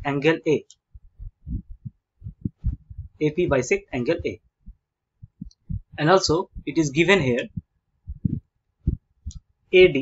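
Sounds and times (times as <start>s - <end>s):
soft low thumps: 0.9s - 9.6s.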